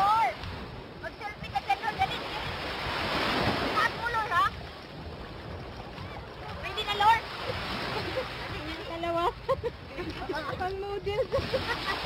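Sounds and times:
sea water washing at shore: 0.0s - 12.0s.

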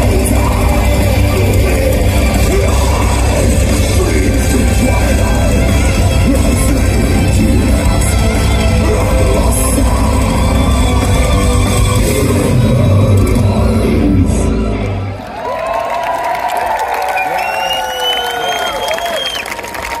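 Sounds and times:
heavy metal band playing live: 0.0s - 15.1s
crowd cheering and shouting: 0.0s - 20.0s
high whistle-like tones: 17.2s - 19.5s.

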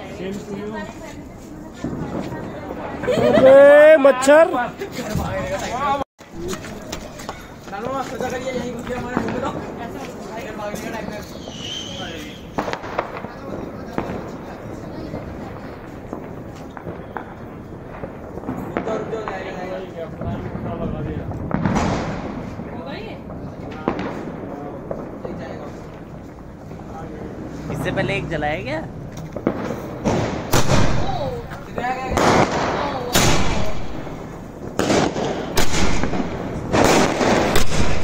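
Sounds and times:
firecracker bang: 0.0s - 3.5s, 4.3s - 38.0s
firecracker cracks: 6.3s - 26.9s, 29.0s - 38.0s.

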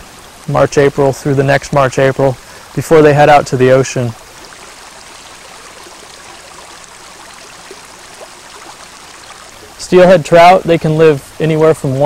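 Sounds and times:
stream flowing: 0.0s - 12.0s.

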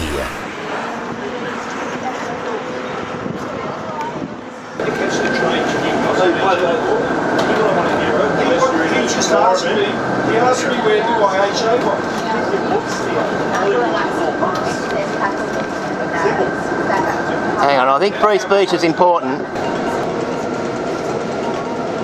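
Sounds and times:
bus running noise: 0.0s - 22.0s
many voices talking: 0.0s - 22.0s.

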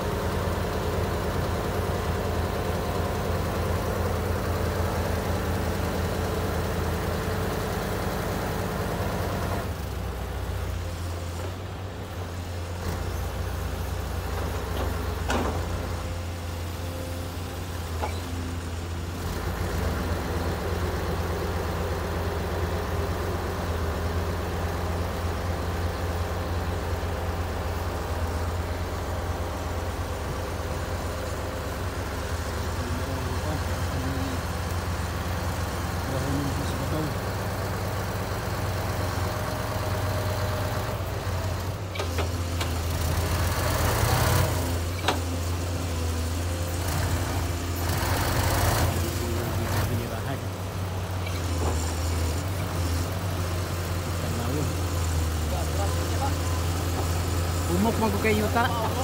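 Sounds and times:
heavy diesel engine running: 0.0s - 59.0s.

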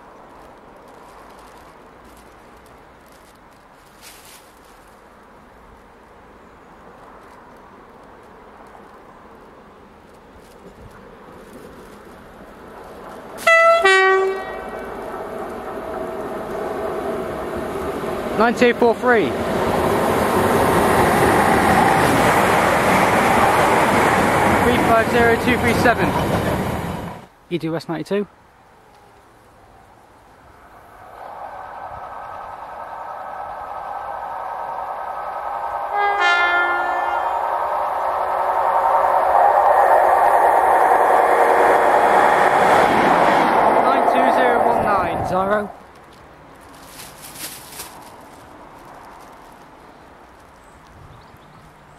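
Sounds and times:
train rumbling: 0.0s - 27.4s, 30.2s - 51.2s
wheel and rail noise: 0.0s - 27.4s, 28.5s - 51.9s
electric locomotive passing: 10.6s - 27.4s, 29.5s - 46.2s
two-tone locomotive horn: 13.4s - 14.8s, 35.9s - 37.6s.

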